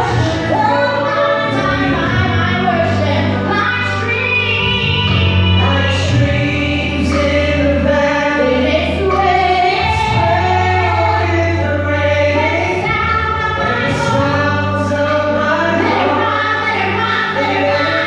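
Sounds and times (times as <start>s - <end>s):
sustained low bass: 0.0s - 18.0s
woman singing into a microphone: 0.0s - 18.0s.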